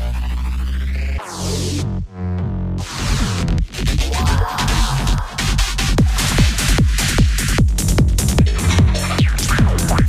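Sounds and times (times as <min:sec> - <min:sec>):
dubstep music: 0:00.0 - 0:10.0.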